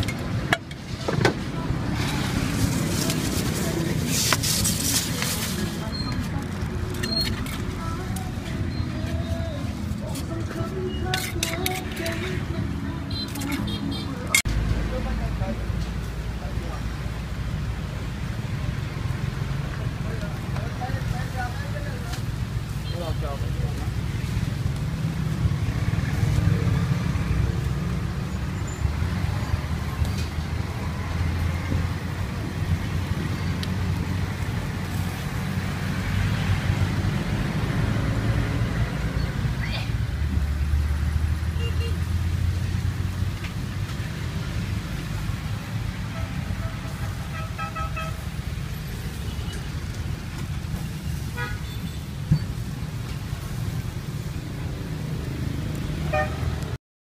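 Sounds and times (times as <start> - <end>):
vehicle engines passing: 0.0 - 56.8.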